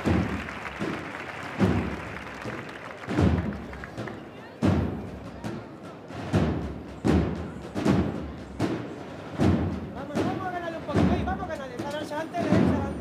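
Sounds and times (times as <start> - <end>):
murmur of large crowd: 0.0 - 13.0.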